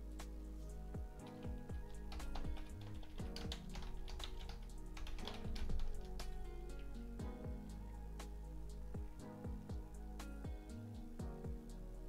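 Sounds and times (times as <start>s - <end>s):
soft background music: 0.0s - 12.0s
keyboard typing: 1.2s - 7.0s.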